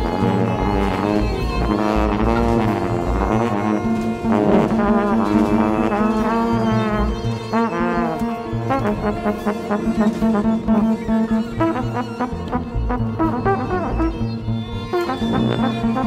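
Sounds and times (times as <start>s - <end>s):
held low note: 0.0s - 16.0s
jazz wind instruments: 0.0s - 16.0s
pulsing bass: 0.0s - 16.0s.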